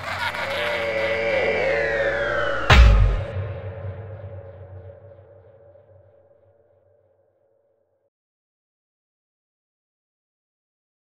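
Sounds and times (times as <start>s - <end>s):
eerie electronic tones sliding down: 0.0s - 6.3s.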